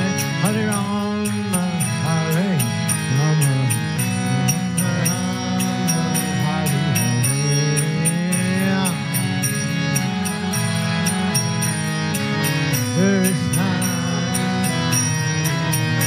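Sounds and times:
man singing a chant: 0:00.0 - 0:09.2, 0:13.0 - 0:15.0
hand cymbals striking: 0:00.0 - 0:16.0
harmonium droning chords: 0:00.0 - 0:16.0.

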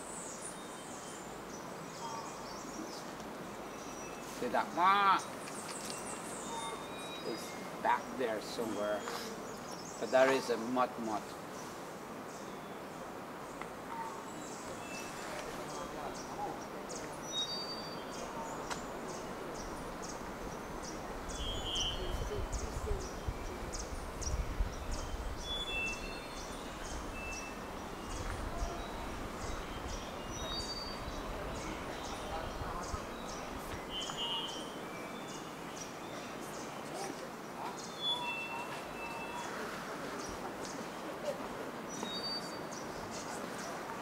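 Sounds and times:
birds chipping: 0:00.0 - 0:44.0
whistled bird notes: 0:21.3 - 0:23.2, 0:32.0 - 0:35.9, 0:37.8 - 0:39.6.

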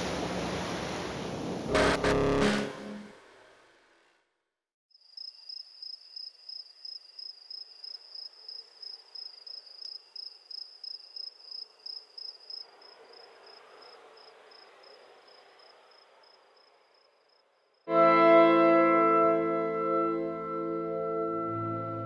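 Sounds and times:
cricket chirping: 0:04.9 - 0:17.9.

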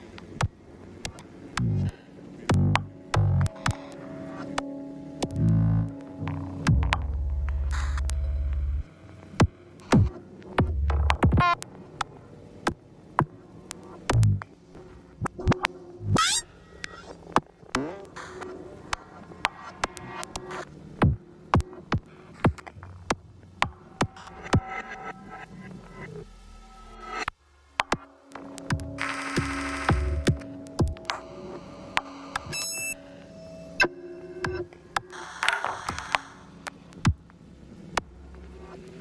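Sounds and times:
faint low electronic tones: 0:00.0 - 0:11.8, 0:22.6 - 0:39.0
faint low drone: 0:00.0 - 0:12.3, 0:23.8 - 0:39.0
bright beeping tone: 0:29.2 - 0:34.7.

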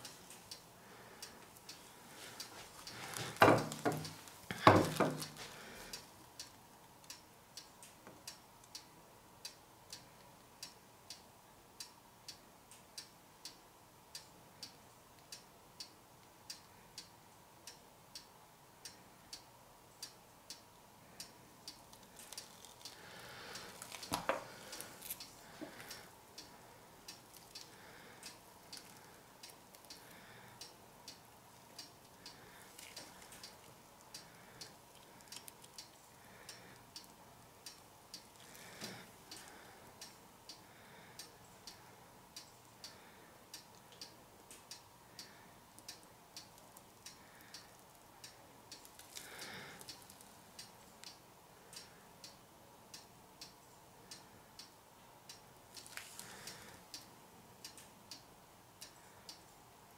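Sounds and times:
faint ticking: 0:00.0 - 0:59.9.

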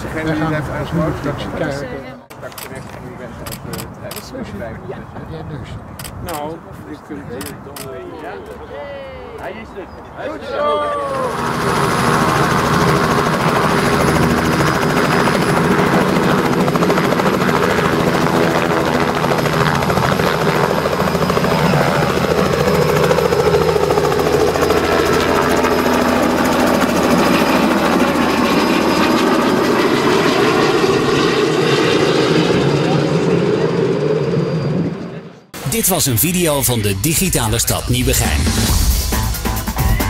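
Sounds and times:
helicopter rotor and turbine: 0:11.0 - 0:39.3.

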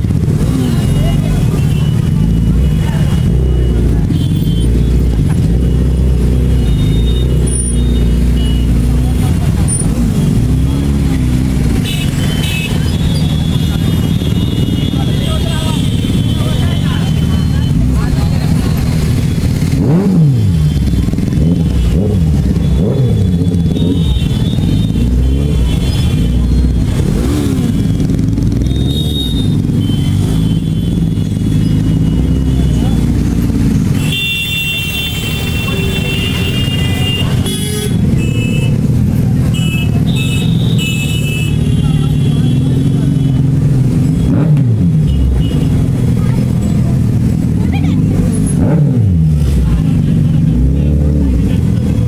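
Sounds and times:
motorcycle engines revving: 0:00.0 - 0:52.0
vehicle horns honking: 0:01.5 - 0:05.0, 0:11.6 - 0:17.9, 0:19.9 - 0:33.1, 0:33.8 - 0:43.6, 0:44.2 - 0:46.0.

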